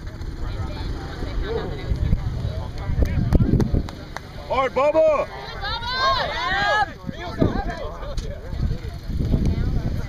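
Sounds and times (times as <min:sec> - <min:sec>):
low uneven rumble: 0:00.0 - 0:10.0
spectators calling faintly: 0:00.0 - 0:10.0.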